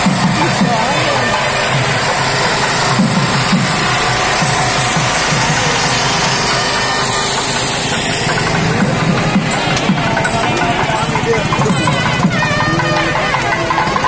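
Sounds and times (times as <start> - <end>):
procession music: 0.0 - 14.0
vehicle engine running: 0.0 - 14.0.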